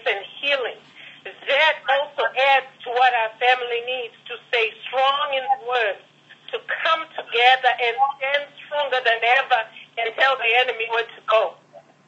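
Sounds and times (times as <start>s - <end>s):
person talking over telephone: 0.0s - 11.6s.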